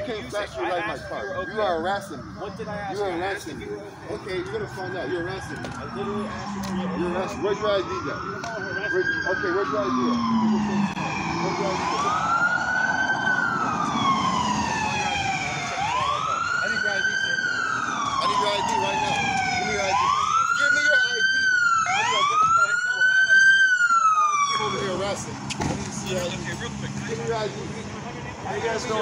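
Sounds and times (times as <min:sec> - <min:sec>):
police siren wailing: 0:00.0 - 0:29.0.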